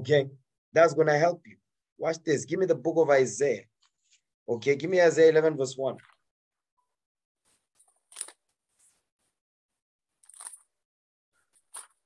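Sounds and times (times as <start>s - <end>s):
pages being turned: 7.5s - 9.1s, 10.2s - 10.7s, 11.5s - 12.0s.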